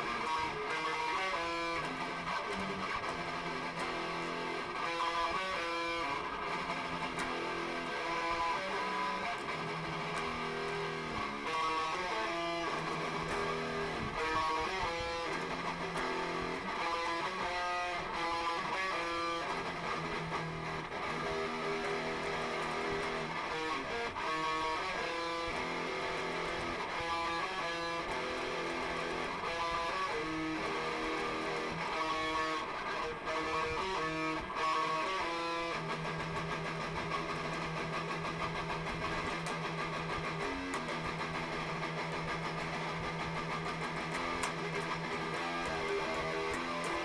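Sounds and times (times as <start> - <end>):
electric guitar notes: 0.0 - 47.0.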